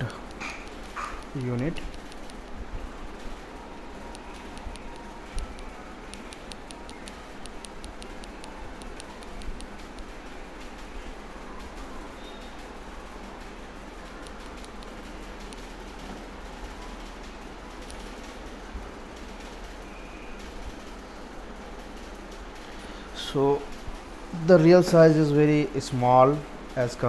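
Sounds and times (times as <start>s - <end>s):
keyboard and mouse clicks: 0.2s - 2.4s, 4.1s - 10.1s, 14.2s - 16.3s, 17.8s - 18.3s.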